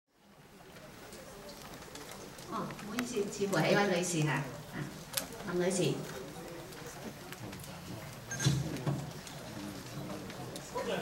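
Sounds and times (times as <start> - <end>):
audience murmur: 0.1 - 11.0.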